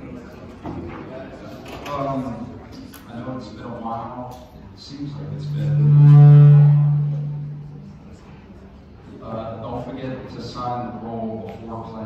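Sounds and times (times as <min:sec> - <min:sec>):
low hum with overtones: 0:04.8 - 0:08.7.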